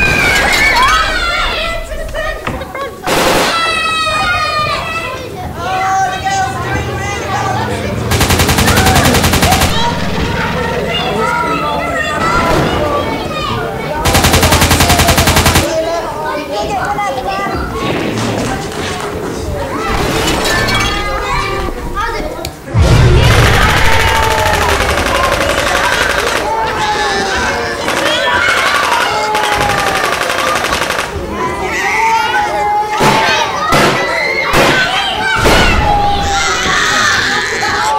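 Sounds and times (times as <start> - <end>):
voices shouting: 0.0 - 17.7, 19.3 - 37.9
people yelling and crying: 0.0 - 37.9
automatic gunfire: 3.1 - 3.7, 8.1 - 10.4, 14.0 - 15.8, 23.2 - 26.5, 27.8 - 31.2
loud blast: 22.7 - 25.8.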